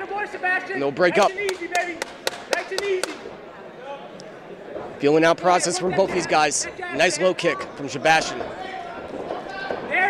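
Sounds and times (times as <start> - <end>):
low murmur of hall noise: 0.0 - 10.0.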